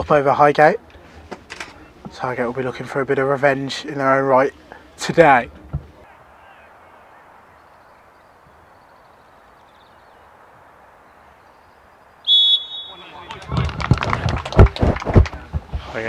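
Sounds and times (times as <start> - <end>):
referee's whistle blast: 12.2 - 13.2
loud hand clapping: 13.2 - 15.4.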